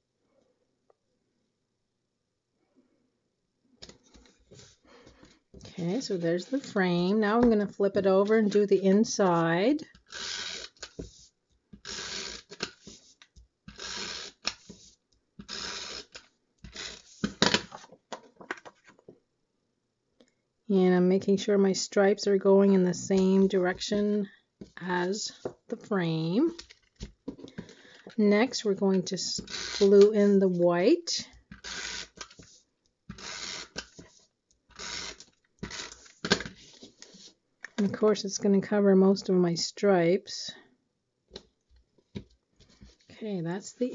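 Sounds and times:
tape runner drawn along paper: 0:10.0 - 0:17.9, 0:29.4 - 0:30.6, 0:31.5 - 0:37.4.

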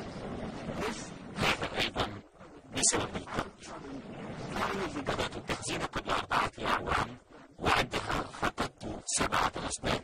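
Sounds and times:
distorted man's voice: 0:01.4 - 0:10.0.

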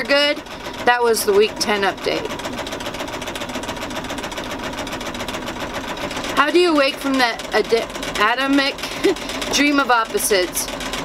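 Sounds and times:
exercise machine whirring: 0:00.0 - 0:11.0.

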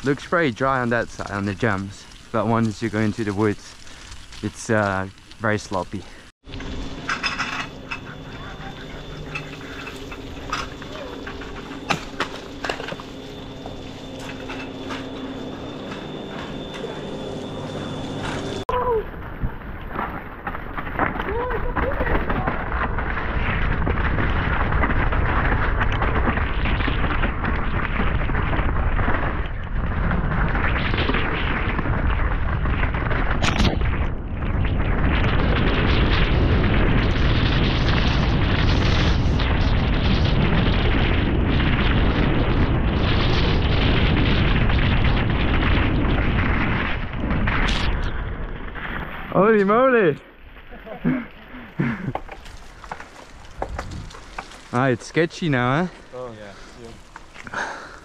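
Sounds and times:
tyres rolling on wet dirt: 0:00.0 - 0:17.2, 0:48.8 - 0:58.0
steady hum: 0:06.0 - 0:19.6
bike rattling: 0:50.4 - 0:58.0
wind buffeting microphone: 0:53.6 - 0:54.3.

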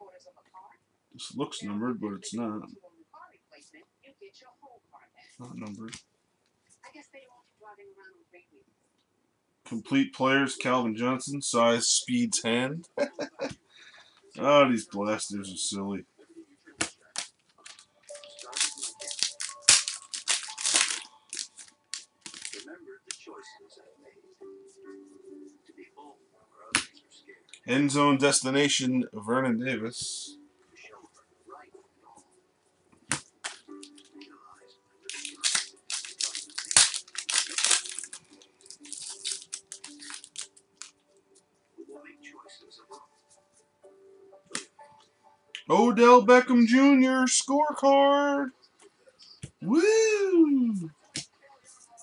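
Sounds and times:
cards being handled: 0:16.8 - 0:23.2, 0:33.1 - 0:34.3, 0:35.1 - 0:41.0
foil wrappers crinkling and tearing: 0:17.1 - 0:22.7, 0:35.1 - 0:41.0.

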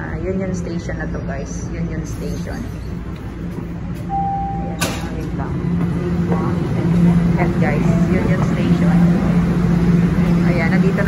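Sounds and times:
subway train rumble and motor hum: 0:00.0 - 0:11.0.

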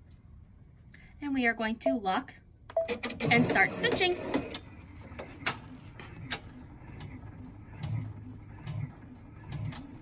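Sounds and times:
embroidery machine stitching: 0:02.9 - 0:10.0.

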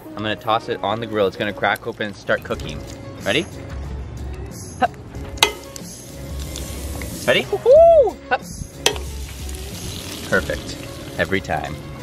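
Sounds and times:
egg cracking on griddle: 0:05.4 - 0:07.3, 0:08.8 - 0:11.3
egg sizzling: 0:05.4 - 0:08.1, 0:08.7 - 0:12.0.

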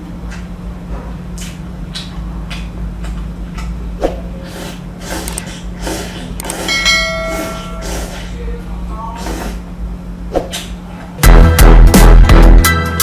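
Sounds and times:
steady low hum: 0:00.0 - 0:13.0
person slurping and chewing noodles: 0:04.3 - 0:08.3.

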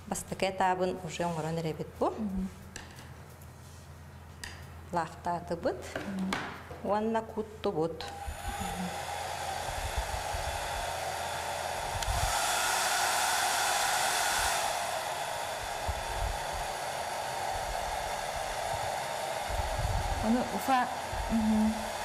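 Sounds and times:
hair dryer blowing: 0:08.0 - 0:22.0.

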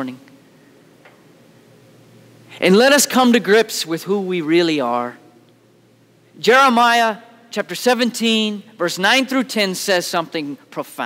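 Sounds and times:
man speaking: 0:00.0 - 0:00.2, 0:02.6 - 0:05.3, 0:06.4 - 0:11.0
low steady hum: 0:00.0 - 0:11.0.

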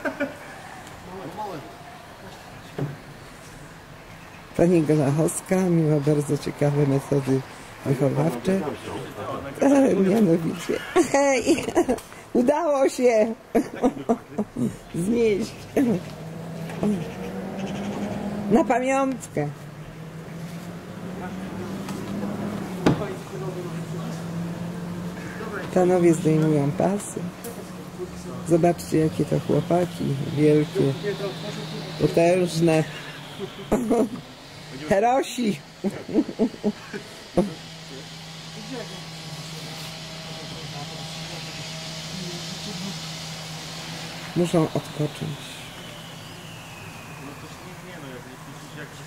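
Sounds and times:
people talking: 0:00.0 - 0:03.0, 0:04.6 - 0:16.1, 0:16.7 - 0:17.2, 0:18.5 - 0:19.6, 0:21.2 - 0:43.1, 0:44.3 - 0:45.8, 0:47.1 - 0:49.0
faint men's voices: 0:13.4 - 0:49.0
truck engine idling: 0:13.4 - 0:49.0
sharp knock: 0:22.8 - 0:23.1.

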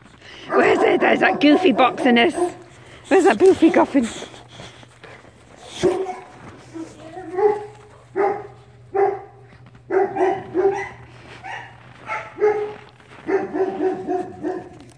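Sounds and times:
dog barking: 0:00.4 - 0:02.6, 0:05.8 - 0:06.3, 0:07.0 - 0:14.9.

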